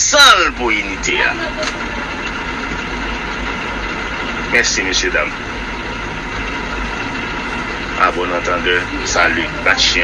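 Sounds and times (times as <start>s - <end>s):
background rumble and hiss: 0.0s - 10.0s.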